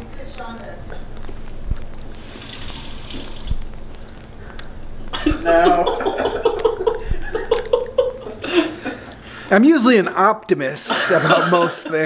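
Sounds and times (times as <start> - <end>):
person chewing wetly: 1.9 - 4.9, 7.4 - 7.8.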